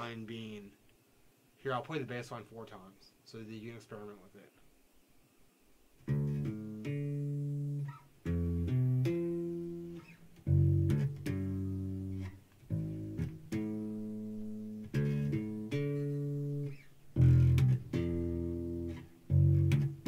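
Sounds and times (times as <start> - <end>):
bass guitar plucked notes: 6.0 - 20.0.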